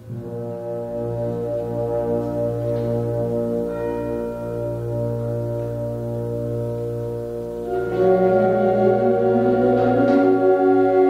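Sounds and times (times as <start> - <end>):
concert band sustained low chord: 0.0 - 11.0.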